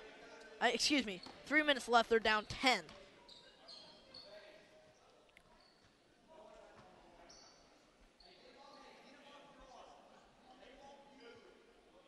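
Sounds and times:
sneaker squeaks on hardwood floor: 2.8s - 4.3s.

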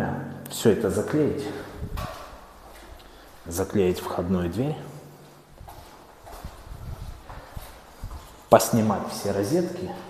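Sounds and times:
soft footsteps on hard floor: 1.7s - 3.8s, 5.1s - 9.2s
phone rustling while carried: 5.3s - 8.5s.

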